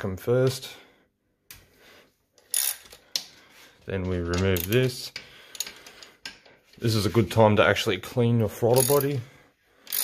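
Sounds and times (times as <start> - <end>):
ratchet spanner clinking: 2.4 - 3.1, 4.3 - 6.5, 8.7 - 9.2.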